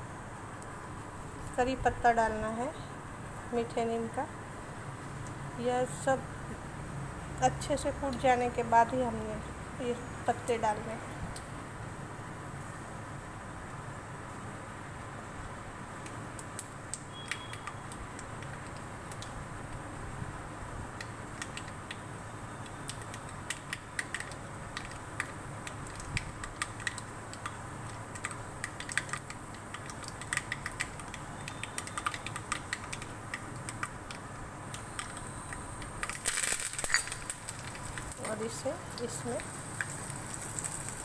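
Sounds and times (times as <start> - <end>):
seeds popping in hot oil: 22.6 - 41.0
leaves sizzling in oil: 36.2 - 41.0.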